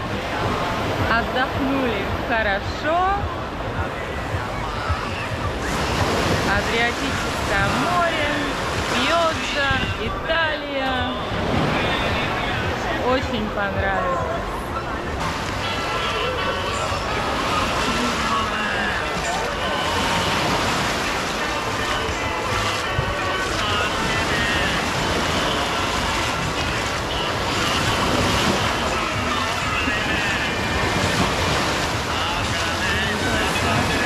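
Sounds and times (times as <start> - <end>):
sea surf breaking on beach: 0.0 - 13.8, 14.5 - 34.0
faint distant voices: 0.0 - 34.0.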